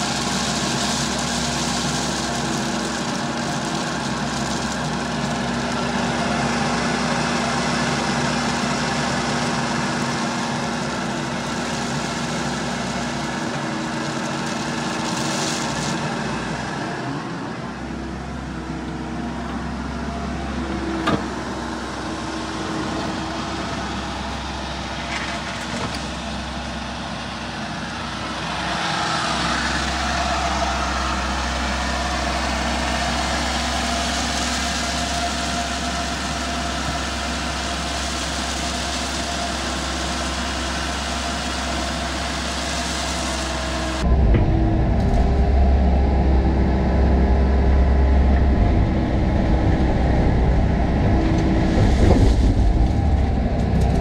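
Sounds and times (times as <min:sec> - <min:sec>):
excavator diesel engine and hydraulics: 0:00.0 - 0:54.0.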